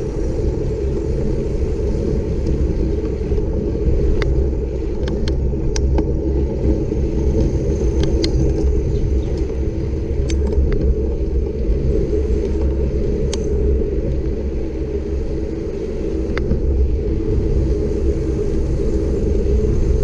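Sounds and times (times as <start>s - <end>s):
bicycle tyres rolling on asphalt: 0.0s - 20.0s
wind on microphone: 0.0s - 20.0s
bike clicks and ticks: 0.8s - 11.6s, 12.3s - 14.4s.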